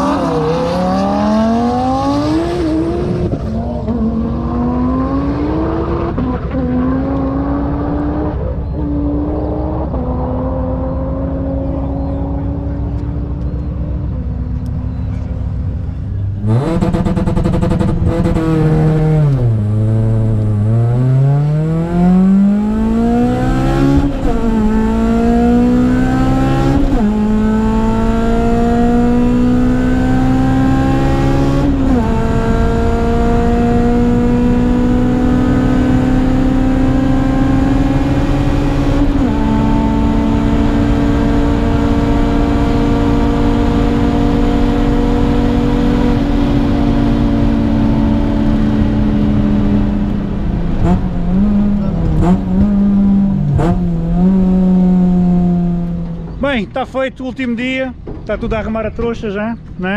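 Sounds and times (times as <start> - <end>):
car engine accelerating hard: 0.0 - 56.7.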